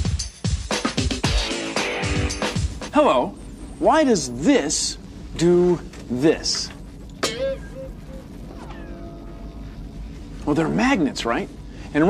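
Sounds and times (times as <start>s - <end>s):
comic boing sound effect: 7.2s - 9.5s.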